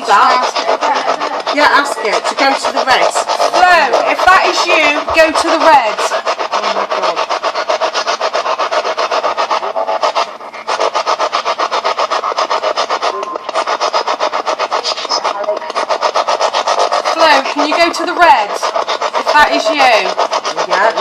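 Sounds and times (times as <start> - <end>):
pulsing radio static: 0.0 - 6.0, 12.8 - 18.5.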